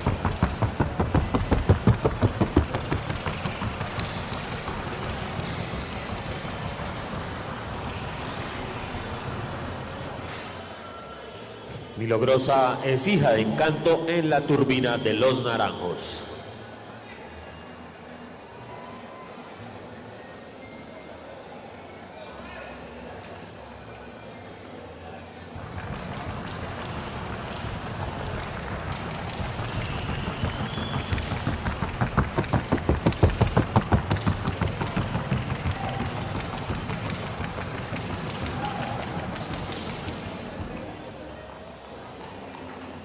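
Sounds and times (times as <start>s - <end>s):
horse hoofbeats on hard track: 0.0s - 7.2s, 25.8s - 40.8s.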